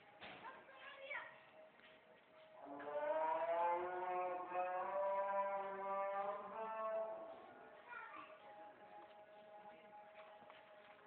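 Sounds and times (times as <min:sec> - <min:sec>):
cow mooing: 0:02.6 - 0:07.4.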